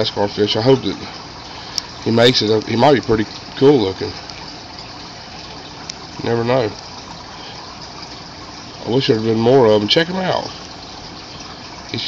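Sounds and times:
aquarium filter water rushing: 0.0s - 12.0s.

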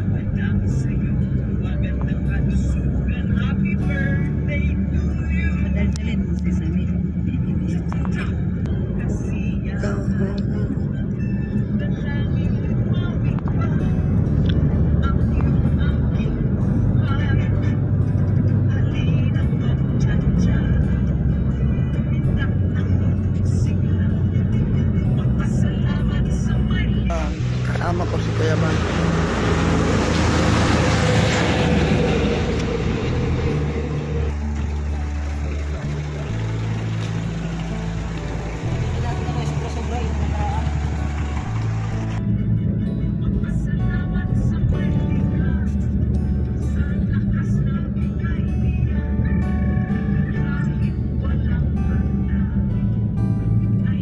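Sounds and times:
music: 0.0s - 54.0s
road and wind noise: 0.0s - 54.0s.

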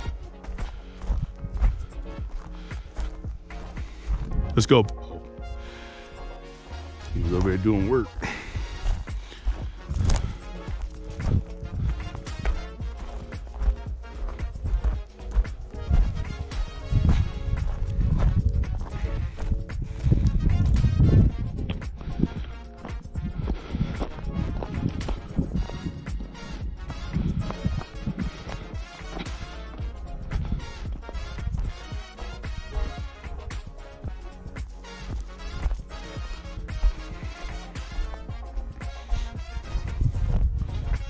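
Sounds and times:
footsteps on gravel: 0.0s - 5.4s, 6.5s - 41.0s
background music: 0.0s - 41.0s.

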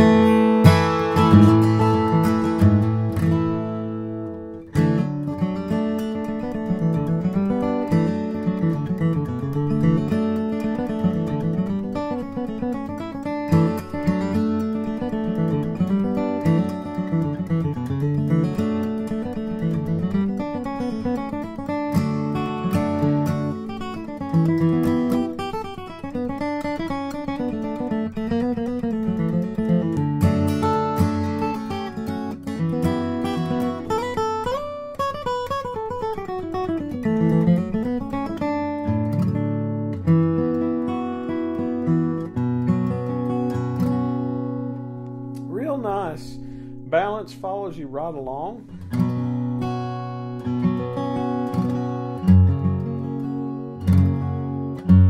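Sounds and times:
acoustic guitar picking and strumming: 0.0s - 55.0s.

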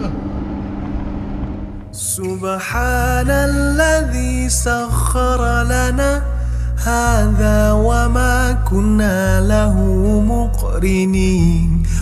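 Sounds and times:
bus passing by: 0.0s - 2.2s
car engine drone and road noise: 0.0s - 3.9s.

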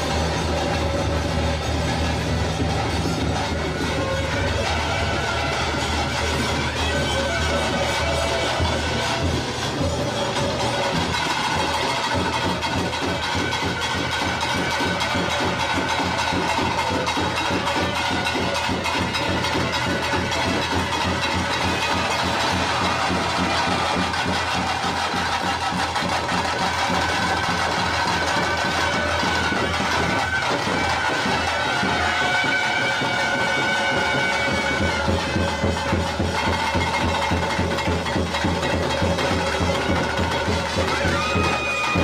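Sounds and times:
fast even drumming: 0.0s - 42.0s
reed wind instrument held notes: 0.0s - 42.0s.

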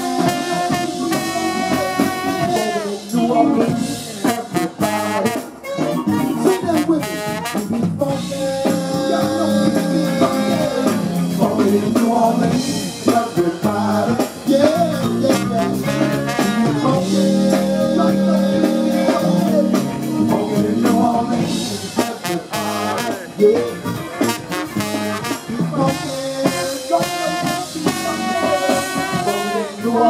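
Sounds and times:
funk band playing loudly: 0.0s - 30.0s
person singing through a microphone: 0.0s - 30.0s.

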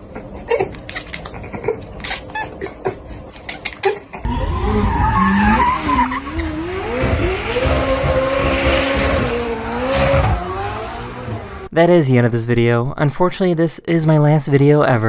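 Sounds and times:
tyres squealing: 4.3s - 11.6s
sports car engine revving: 4.3s - 11.7s.

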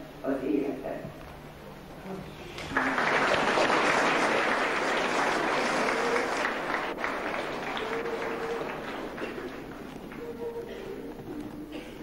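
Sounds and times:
audience applauding: 2.4s - 10.7s.

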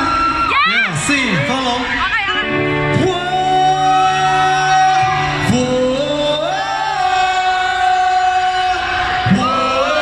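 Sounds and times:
live synth-pop band music: 0.0s - 10.0s.

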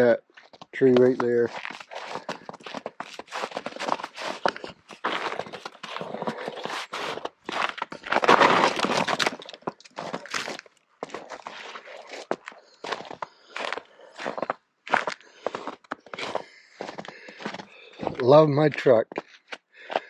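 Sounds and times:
footsteps crunching in snow: 0.4s - 20.0s.

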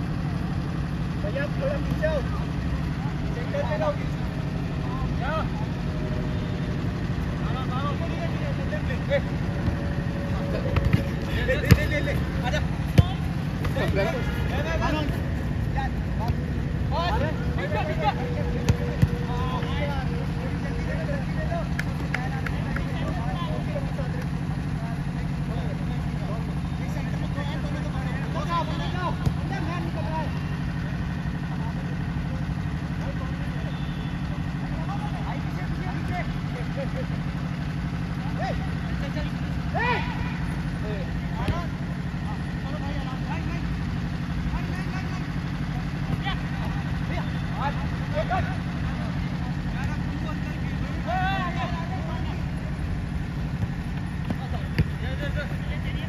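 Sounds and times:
ball being kicked: 10.5s - 14.3s, 18.6s - 19.4s, 53.5s - 55.0s
distant shouts of players: 38.3s - 42.5s.

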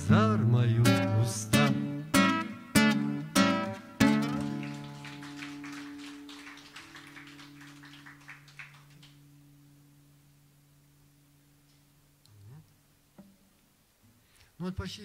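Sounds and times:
acoustic guitar chords strummed: 0.0s - 4.8s
soft plucked guitar notes: 0.4s - 4.6s.

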